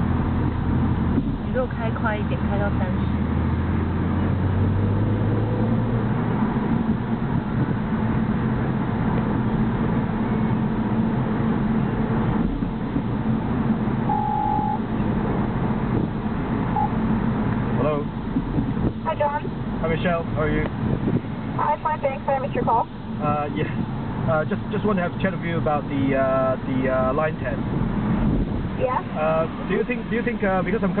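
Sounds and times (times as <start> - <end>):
car engine and road noise: 0.0 - 31.0
short beep: 14.1 - 14.8, 16.7 - 17.0.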